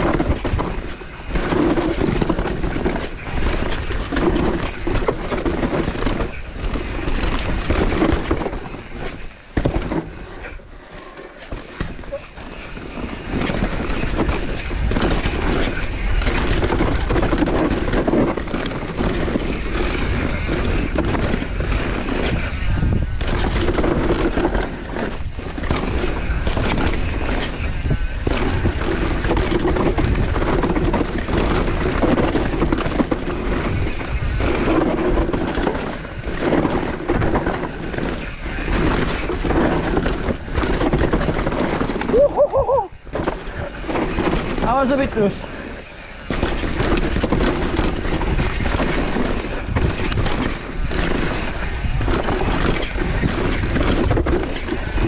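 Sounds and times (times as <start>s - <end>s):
wind rumbling on microphone: 0.0s - 10.9s, 11.5s - 55.0s
bike rattling over bumps: 0.0s - 55.0s
tyres rolling over dirt: 0.0s - 55.0s.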